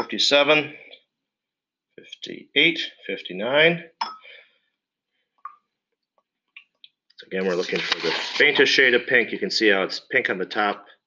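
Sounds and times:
man speaking: 0.0 - 0.9, 2.0 - 4.0, 7.2 - 10.9.

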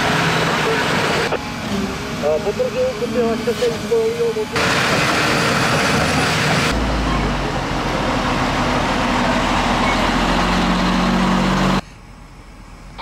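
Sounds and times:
truck engines rumbling: 0.0 - 13.0.

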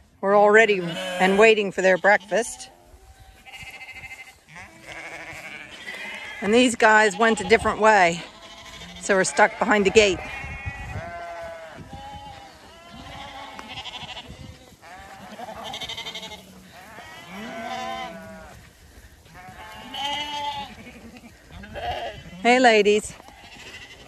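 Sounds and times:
sheep bleating: 0.7 - 18.7, 19.3 - 24.0.

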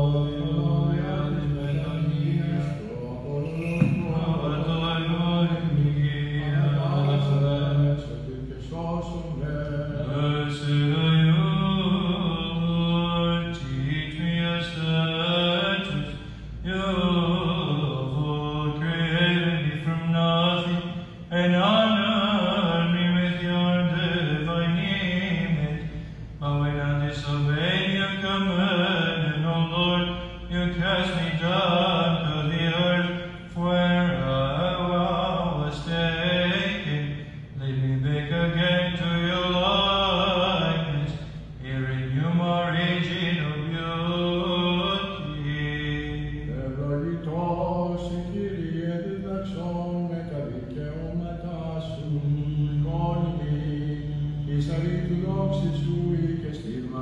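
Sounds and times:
man chanting unaccompanied: 0.0 - 57.0.

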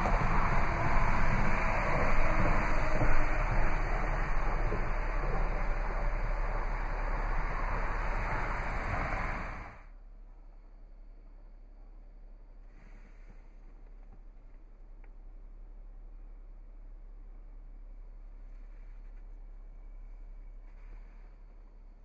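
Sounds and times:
steady rushing noise: 0.0 - 9.9
low hum: 0.0 - 22.0.

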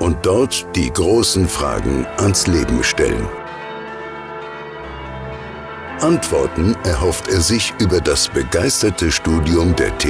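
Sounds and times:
church bells ringing: 1.0 - 10.0.

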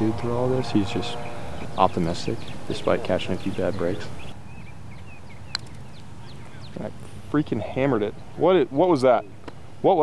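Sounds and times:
faint bird chirps: 1.0 - 6.9.

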